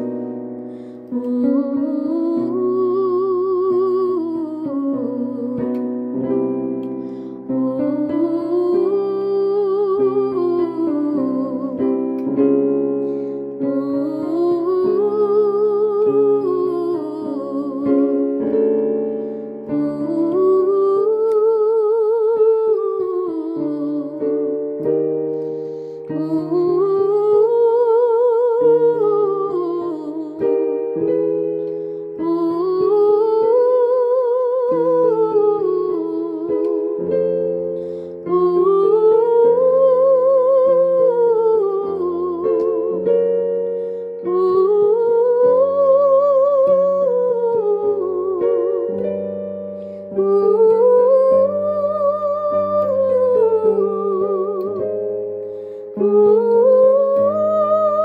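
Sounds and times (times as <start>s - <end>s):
held keyboard chords: 0.0s - 58.0s.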